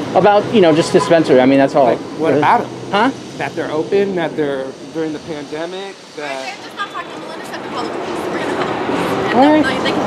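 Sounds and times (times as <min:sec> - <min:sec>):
heavy street traffic: 0:00.0 - 0:10.0
trolleybus passing: 0:00.0 - 0:10.0.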